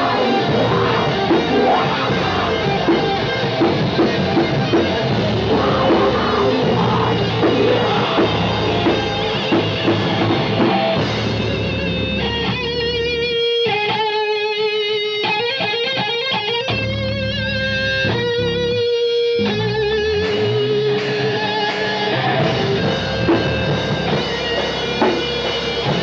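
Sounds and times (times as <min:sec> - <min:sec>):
electric guitar lead notes: 0:00.0 - 0:26.0
live heavy metal band: 0:00.0 - 0:26.0.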